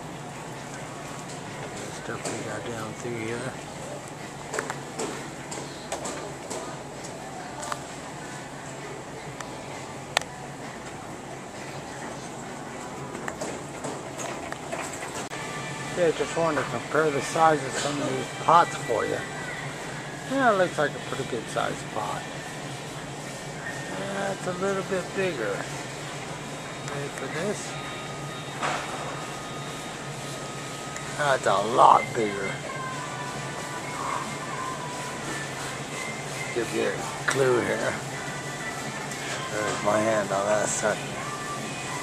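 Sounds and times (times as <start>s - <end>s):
ventilation hum: 0.0s - 42.0s.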